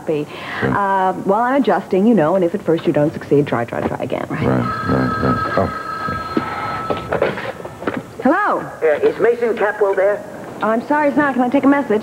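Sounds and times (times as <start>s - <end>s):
telephone ringing: 4.4s - 8.2s.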